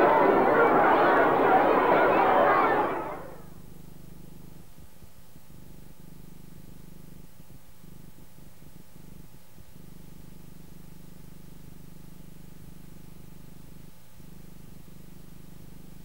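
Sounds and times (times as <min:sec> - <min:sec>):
crowd chatter: 0:00.0 - 0:03.4.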